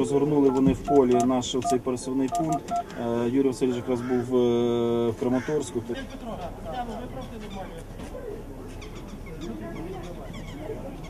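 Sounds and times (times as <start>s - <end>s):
faint background voices: 5.1s - 11.0s.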